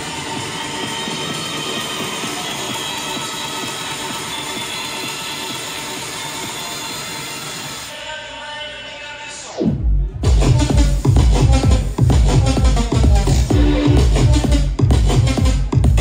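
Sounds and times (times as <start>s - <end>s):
electronic dance music: 0.0s - 16.0s.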